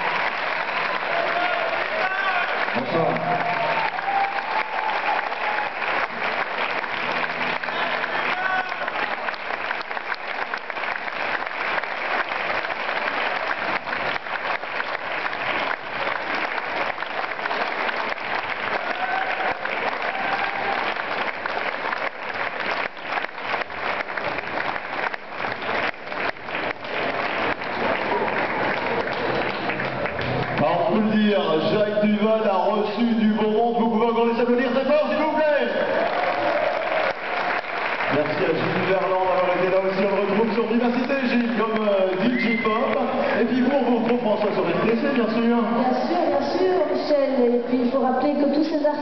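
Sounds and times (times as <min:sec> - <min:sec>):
audience applauding: 0:00.0 - 0:47.6.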